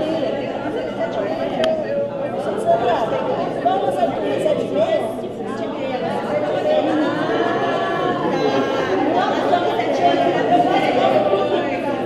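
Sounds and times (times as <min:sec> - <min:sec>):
chatter of a group of people: 0:00.0 - 0:12.0.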